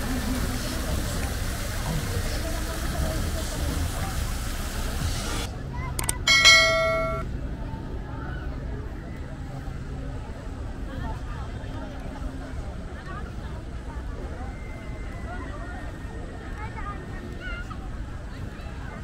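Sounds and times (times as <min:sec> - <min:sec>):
fountain jets splashing into pool: 0:00.0 - 0:07.2
murmur of crowd: 0:00.0 - 0:19.0
bright ding: 0:06.0 - 0:07.2.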